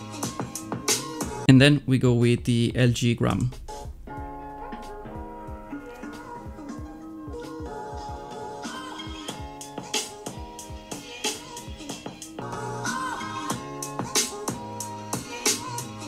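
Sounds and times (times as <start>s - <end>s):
music through laptop speakers: 0.0s - 1.5s, 3.6s - 16.0s.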